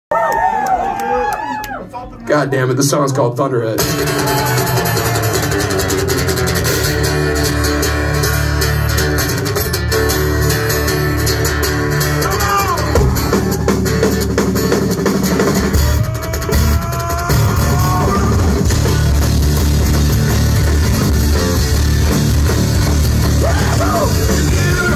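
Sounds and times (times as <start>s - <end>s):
drums: 3.1s - 24.9s
acoustic guitar: 3.8s - 24.9s
electric bass: 3.8s - 24.9s.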